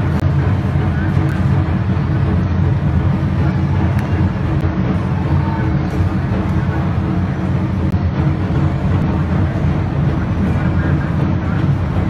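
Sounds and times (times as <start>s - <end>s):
indistinct crowd murmur: 0.0s - 12.0s
steady low rumble: 0.0s - 12.0s.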